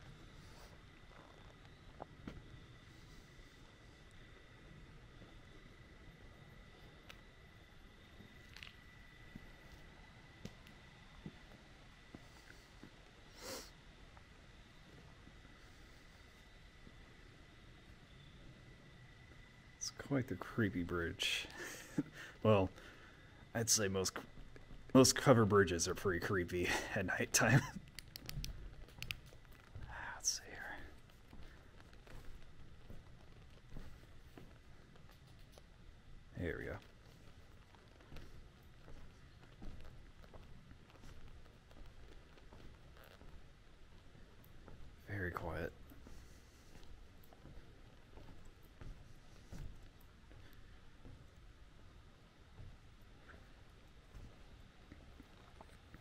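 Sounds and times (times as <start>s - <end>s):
thin high whine: 0.0s - 40.1s
soft clicks: 27.9s - 29.7s
person whispering: 29.8s - 31.0s.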